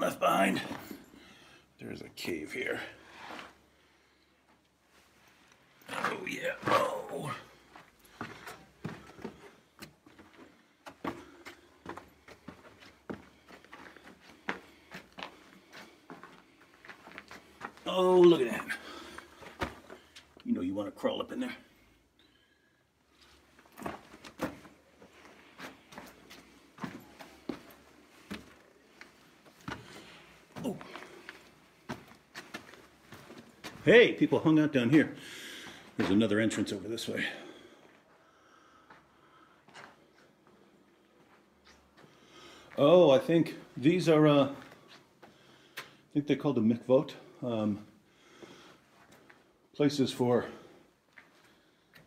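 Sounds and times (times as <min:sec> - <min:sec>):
footsteps on stony rock floor: 0:00.3 - 0:01.2, 0:05.3 - 0:20.4, 0:23.1 - 0:36.6.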